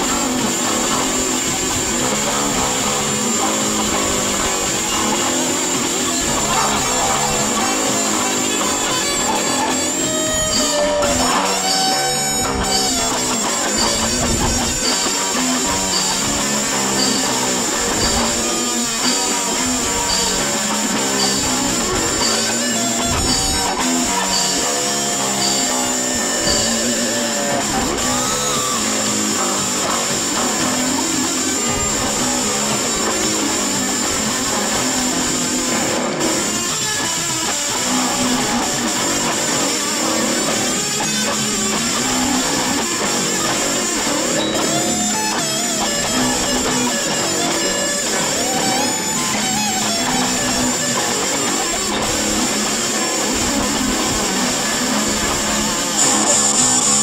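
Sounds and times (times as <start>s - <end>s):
bass guitar: 0.0s - 57.0s
drums: 0.0s - 57.0s
electric guitar: 0.0s - 57.0s.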